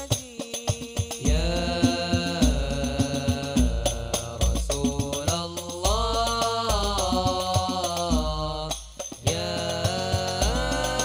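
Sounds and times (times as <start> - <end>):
frame drums: 0.0 - 11.0
men singing in unison: 0.0 - 11.0.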